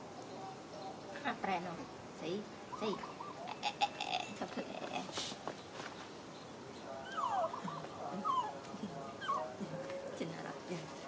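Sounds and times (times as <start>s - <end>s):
baby monkey whimpering squeals: 7.0s - 8.6s.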